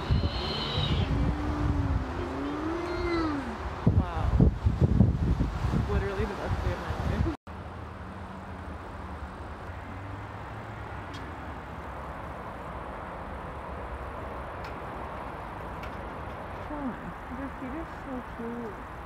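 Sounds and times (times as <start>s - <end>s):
low rumble with hiss: 0.0s - 10.3s.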